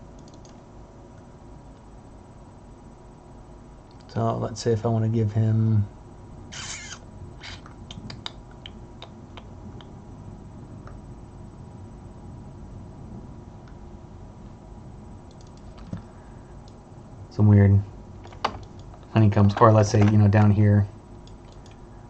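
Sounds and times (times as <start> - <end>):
faint steady hum: 0.0 - 22.0
computer keyboard clicks: 0.2 - 0.6, 15.3 - 16.0, 18.2 - 20.2, 21.2 - 21.9.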